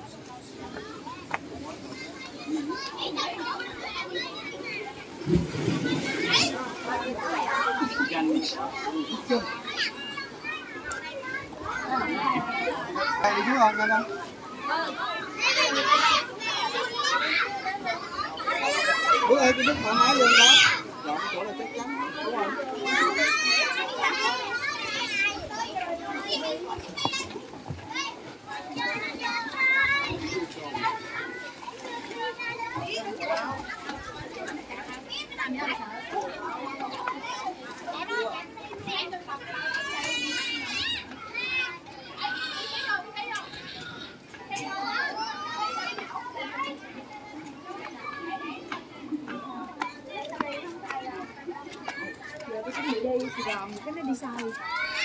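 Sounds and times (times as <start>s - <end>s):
children playing and calling out: 0.0s - 55.0s
people talking: 0.0s - 55.0s.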